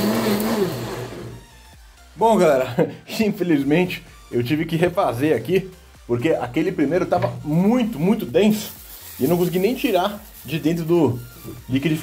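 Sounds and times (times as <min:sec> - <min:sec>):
blender motor whirring: 0:00.0 - 0:01.6.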